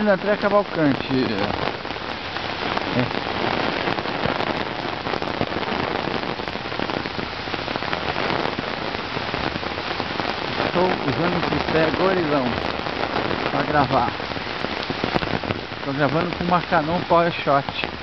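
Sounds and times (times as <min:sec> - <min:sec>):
heavy rain on pavement: 0:00.0 - 0:18.0.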